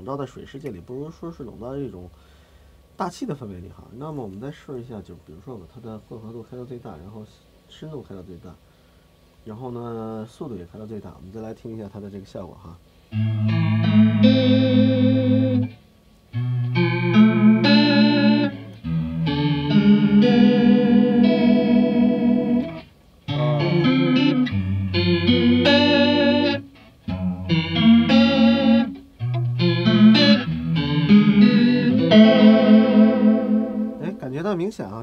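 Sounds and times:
electric guitar chords with chorus: 13.1s - 34.3s.

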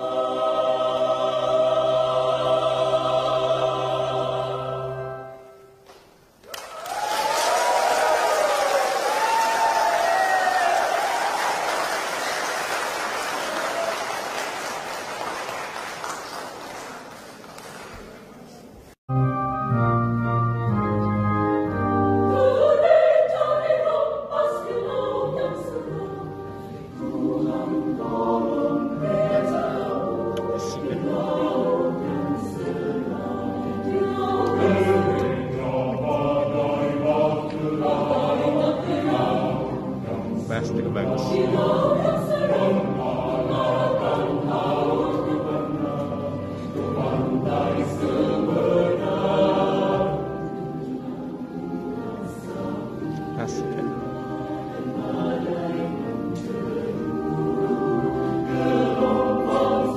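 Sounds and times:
mixed choir singing: 0.0s - 5.8s, 6.8s - 16.9s, 22.0s - 59.9s
electronic keyboard accompaniment: 19.1s - 23.1s.

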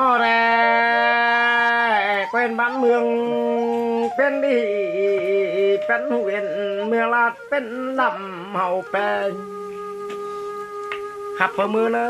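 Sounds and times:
person singing folk song: 0.0s - 9.7s.

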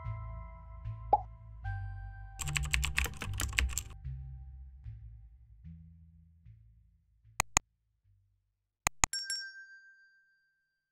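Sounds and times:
keyboard typing clicks: 2.4s - 4.0s, 7.4s - 7.6s, 8.9s - 9.1s
pop sound effect: 7.4s - 7.6s, 8.9s - 9.1s.

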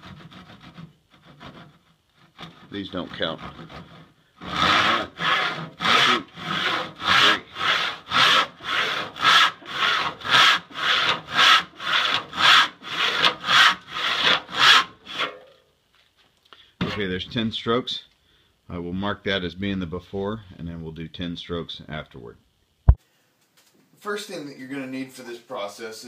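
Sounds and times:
hand saw cutting wood: 0.0s - 15.5s.

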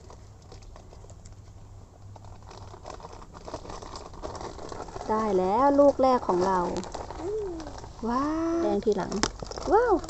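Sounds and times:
plant leaves rustling: 2.3s - 10.0s.

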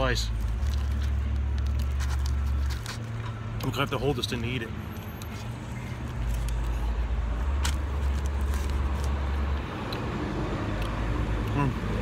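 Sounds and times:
person chewing pizza: 0.3s - 3.9s, 4.9s - 11.8s.

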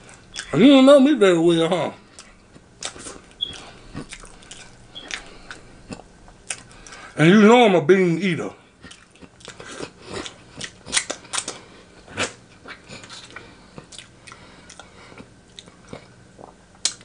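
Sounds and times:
chewing and lip smacking: 0.0s - 0.6s, 2.1s - 7.1s, 8.8s - 17.0s.

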